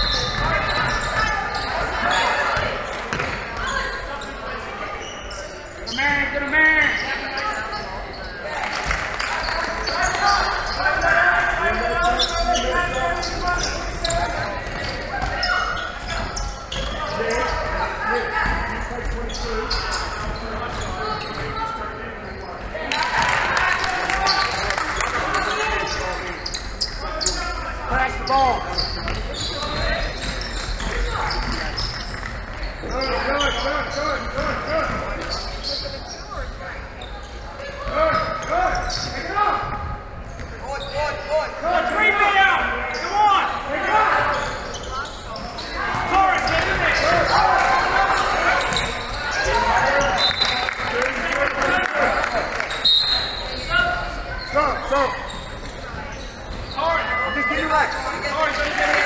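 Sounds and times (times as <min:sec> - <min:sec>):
voices calling out: 0:40.7 - 0:59.0.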